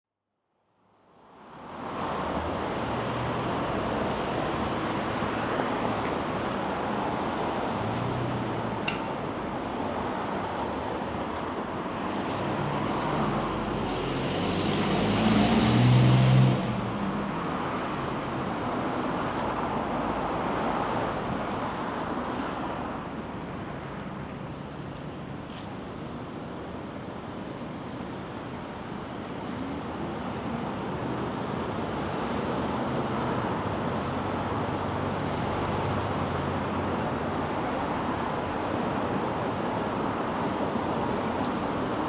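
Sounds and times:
vehicle humming and hissing: 1.2s - 42.0s
cars passing: 1.5s - 42.0s.

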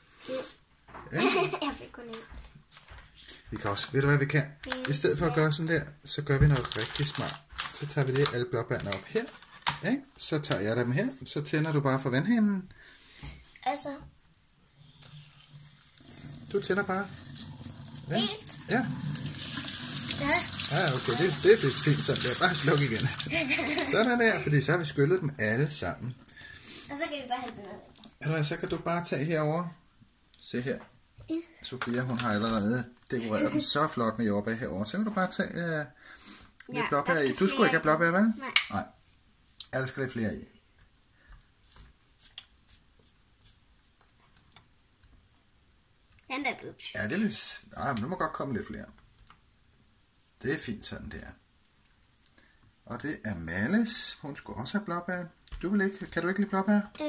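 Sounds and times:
thin plastic crackling and clicking: 6.5s - 9.8s, 31.8s - 32.6s
tap water running into sink: 15.8s - 24.4s.

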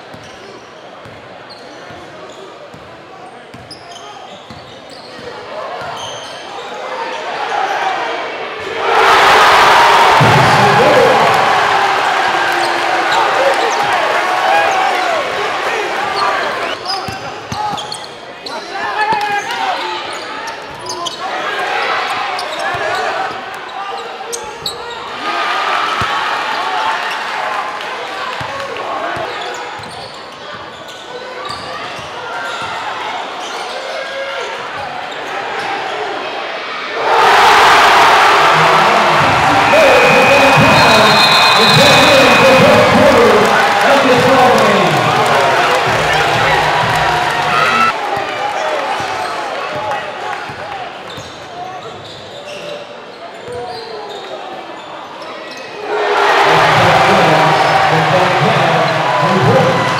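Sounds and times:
crowd din and shouting: 0.0s - 59.9s
sneakers squeaking on hardwood: 3.5s - 6.4s, 29.4s - 32.8s, 51.1s - 54.9s.

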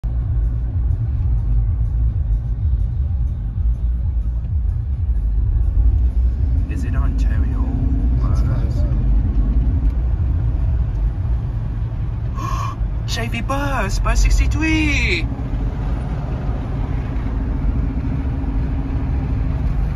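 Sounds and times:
car cabin road rumble: 0.0s - 19.9s.

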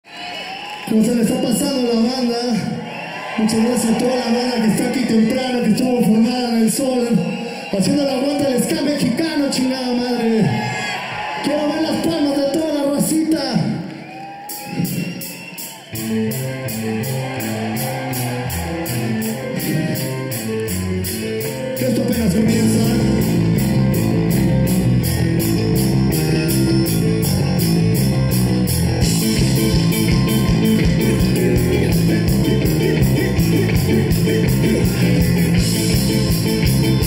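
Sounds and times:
live rock band playing: 14.4s - 37.0s
steady drum beat: 14.5s - 37.0s
electric guitar: 15.9s - 37.0s.

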